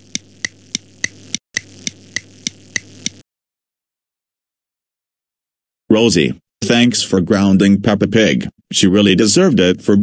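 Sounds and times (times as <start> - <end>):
clock ticking: 0.0 - 3.2.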